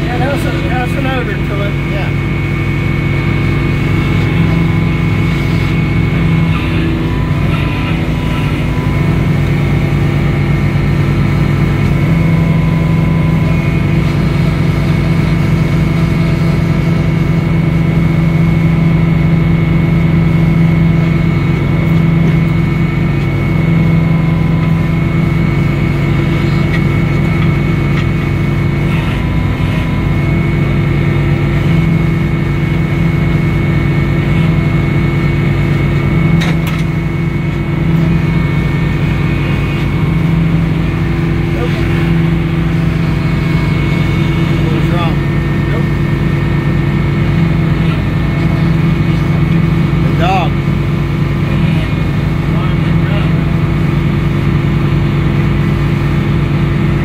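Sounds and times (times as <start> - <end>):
circular saw running: 0.0 - 57.0
sawmill engine drone: 0.0 - 57.0.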